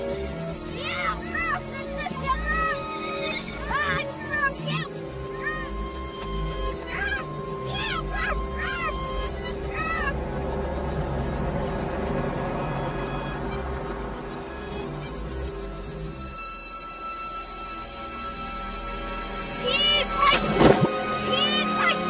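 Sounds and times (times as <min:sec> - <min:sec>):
reversed music with held notes: 0:00.0 - 0:22.0
short high calls: 0:00.7 - 0:10.4.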